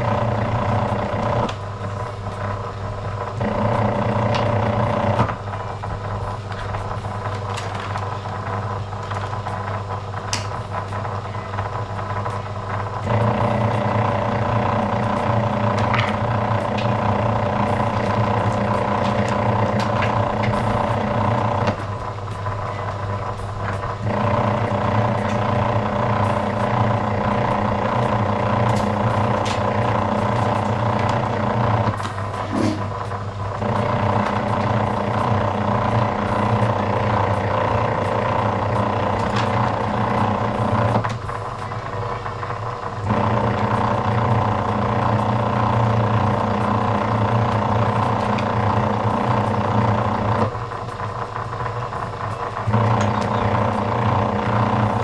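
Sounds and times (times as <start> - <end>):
wire-stripping machine humming: 0.0 - 55.0.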